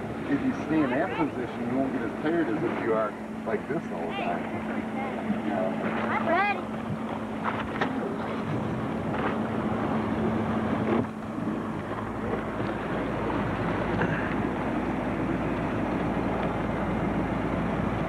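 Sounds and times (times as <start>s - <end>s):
motorboat engine humming: 0.0s - 18.0s
rushing with deep rumble: 0.0s - 18.0s
wind on microphone: 6.8s - 16.7s.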